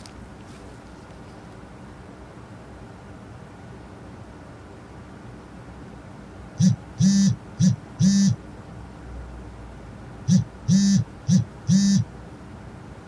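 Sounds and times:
mobile phone vibrating: 0:06.6 - 0:08.4, 0:10.3 - 0:12.1.

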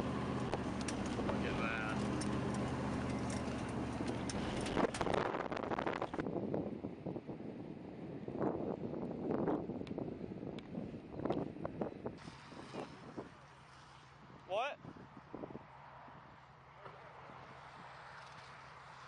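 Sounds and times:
vehicle engine humming: 0:00.0 - 0:06.2
outdoor noise: 0:00.0 - 0:19.0.

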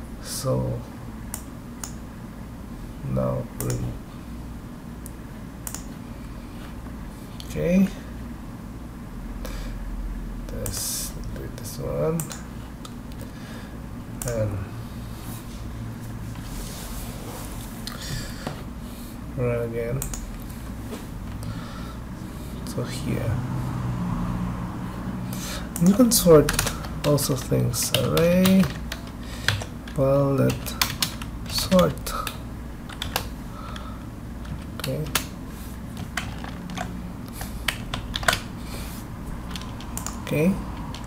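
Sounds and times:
low steady background hum: 0:00.0 - 0:41.0
computer keyboard keystrokes: 0:03.6 - 0:03.9, 0:25.7 - 0:35.4, 0:36.0 - 0:38.5, 0:39.4 - 0:41.0.

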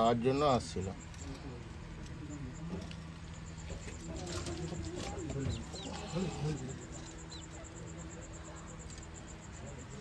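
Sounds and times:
chicks peeping: 0:03.6 - 0:09.3
low cooing bird calls: 0:03.8 - 0:07.9.

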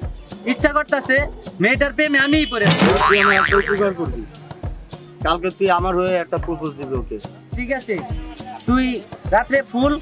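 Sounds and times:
background music: 0:02.7 - 0:10.0
comic wavering pitch effect: 0:02.9 - 0:03.9.

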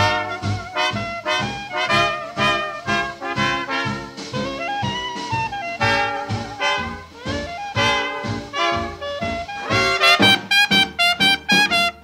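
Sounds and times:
jazz with brass instruments: 0:00.0 - 0:12.0
trumpet playing short clipped notes: 0:00.0 - 0:12.0.

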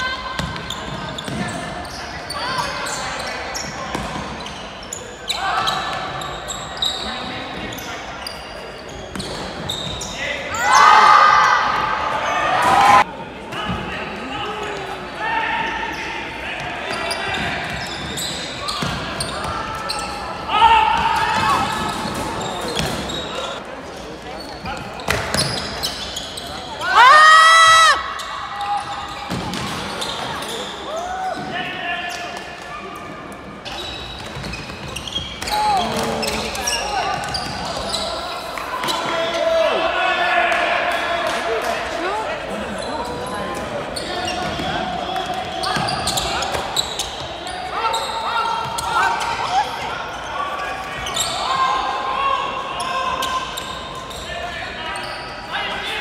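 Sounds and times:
shoe squeak: 0:00.4 - 0:10.6, 0:16.8 - 0:20.4, 0:21.6 - 0:26.8, 0:28.2 - 0:31.4, 0:33.6 - 0:39.0, 0:42.7 - 0:44.7, 0:45.4 - 0:51.7, 0:52.8 - 0:55.5.

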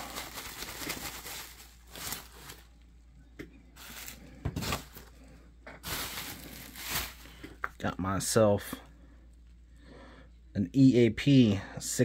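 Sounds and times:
bubble wrap crinkling: 0:00.0 - 0:02.9, 0:03.8 - 0:07.4.

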